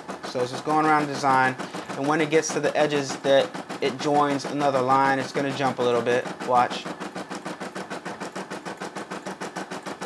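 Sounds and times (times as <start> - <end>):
embroidery machine stitching: 0.0 - 10.0.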